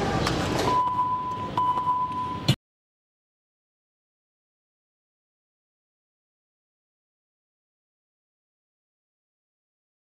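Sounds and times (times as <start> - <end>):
high electronic beep: 0.7 - 2.6.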